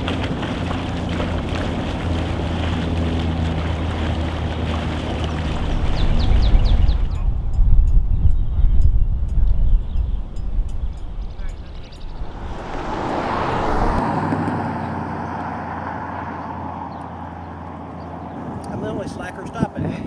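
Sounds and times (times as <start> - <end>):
vehicle passing on road: 0.0 - 7.0, 11.2 - 19.1
wind buffeting microphone: 0.0 - 15.7, 17.5 - 20.0.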